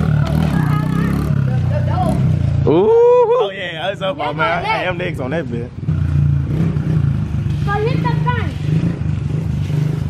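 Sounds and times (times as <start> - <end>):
dirt bike engine running: 0.0 - 2.9, 4.1 - 10.0
people talking: 0.1 - 5.7, 7.6 - 8.6.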